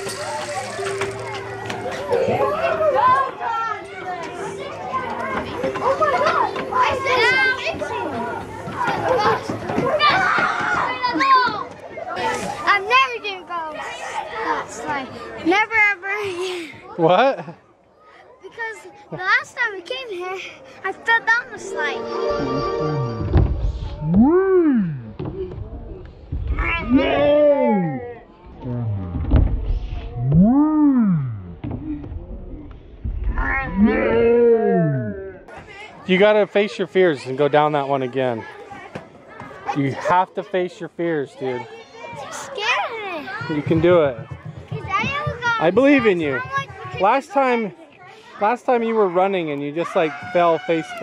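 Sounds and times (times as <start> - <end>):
children chattering and squealing: 0.0 - 28.7, 33.2 - 51.0.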